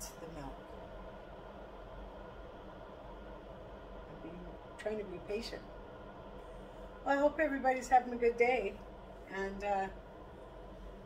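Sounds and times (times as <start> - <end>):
electric kettle hissing: 0.0 - 11.0.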